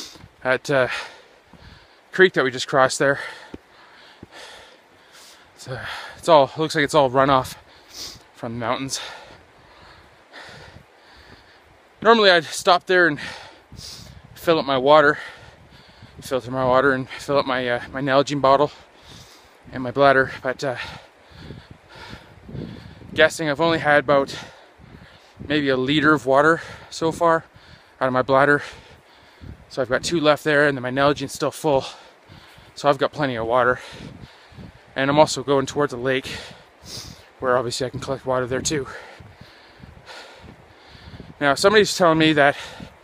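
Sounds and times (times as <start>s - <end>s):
faint breathing: 0.0s - 2.2s, 3.1s - 6.6s, 7.4s - 12.0s, 13.2s - 14.3s, 15.1s - 16.2s, 18.7s - 19.7s, 20.8s - 23.2s, 24.3s - 25.5s, 26.6s - 28.0s, 28.6s - 29.7s, 31.8s - 32.8s, 33.6s - 35.0s, 36.2s - 37.4s, 38.8s - 41.4s, 42.5s - 43.0s
footsteps on dirt trail: 0.0s - 2.2s, 2.8s - 12.5s, 31.5s - 35.3s
soft footfalls: 3.3s - 4.6s.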